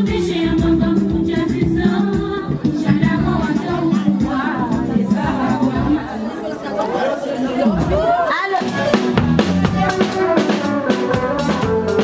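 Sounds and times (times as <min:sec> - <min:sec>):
women chattering and calling out: 0:02.4 - 0:10.8.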